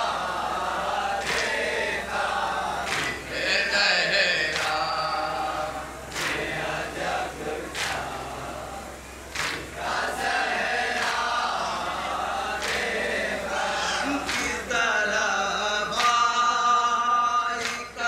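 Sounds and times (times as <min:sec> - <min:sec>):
men chanting in unison: 0:00.0 - 0:18.0.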